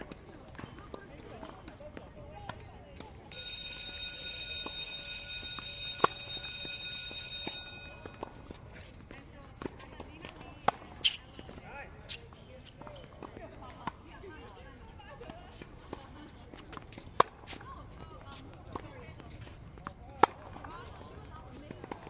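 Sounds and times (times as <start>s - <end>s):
high-pitched tone: 3.3s - 8.6s
tennis balls struck by rackets: 5.9s - 6.2s, 9.5s - 11.7s, 15.5s - 18.0s, 18.6s - 22.0s.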